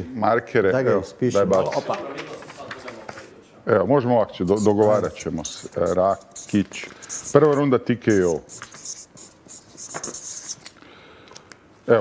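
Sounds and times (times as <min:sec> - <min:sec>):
marker scratching on paper: 0:04.5 - 0:10.7.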